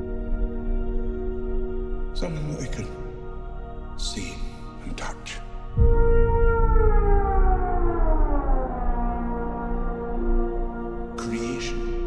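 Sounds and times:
low rumble: 0:05.7 - 0:11.1.

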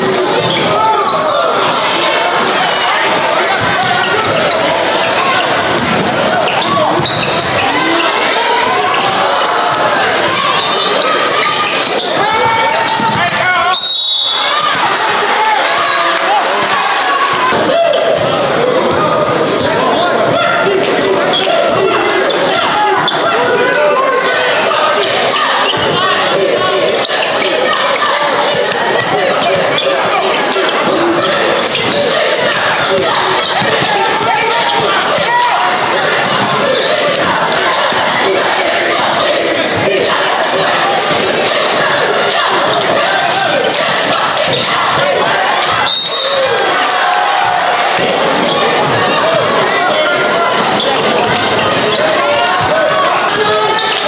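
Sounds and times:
indistinct chatter: 0:00.0 - 0:54.0
basketball bouncing on gym floor: 0:05.6 - 0:07.6, 0:12.9 - 0:13.4.

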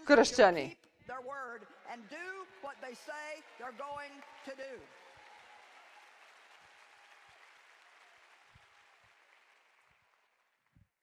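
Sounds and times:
faint applause: 0:01.3 - 0:10.9.

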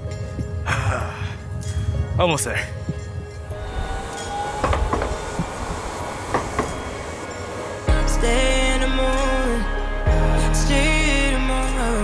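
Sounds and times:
background music: 0:00.0 - 0:12.0
low rumbling: 0:02.9 - 0:12.0
faint rising tone: 0:03.5 - 0:09.7.

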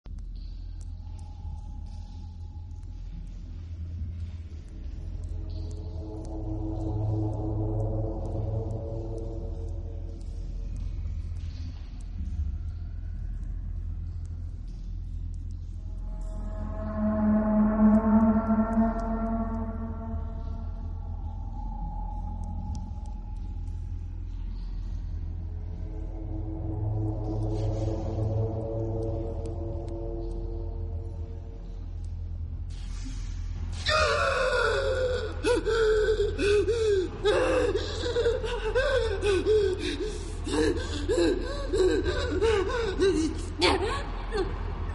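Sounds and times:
deep rumbling drone: 0:00.0 - 0:44.9
steady low hum: 0:00.0 - 0:44.9
faint high ticks: 0:00.1 - 0:33.2
woman gasping: 0:33.9 - 0:44.5.

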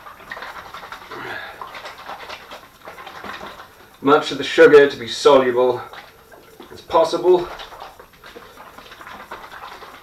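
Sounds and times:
water sloshing in plastic bottle: 0:00.0 - 0:10.0.

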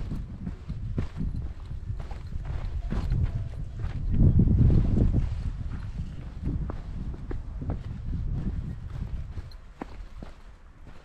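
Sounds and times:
crunching footsteps on trail: 0:00.0 - 0:11.0
steady low rumble: 0:00.0 - 0:11.0.

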